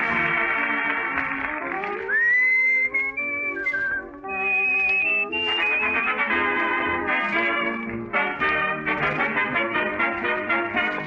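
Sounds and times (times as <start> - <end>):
dance orchestra: 0.0 - 11.0
whistled melody: 2.0 - 8.3.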